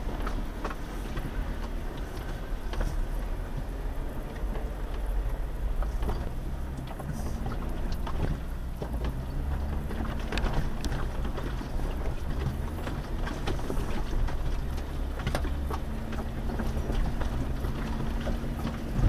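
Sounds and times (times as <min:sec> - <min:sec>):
off-road vehicle engine under load: 0:00.0 - 0:19.0
tires knocking over rocks: 0:00.0 - 0:19.0.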